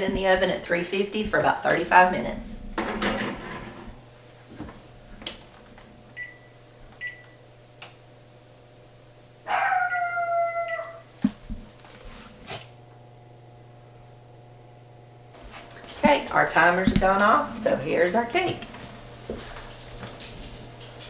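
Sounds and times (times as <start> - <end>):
oven door shutting: 2.8 - 4.0.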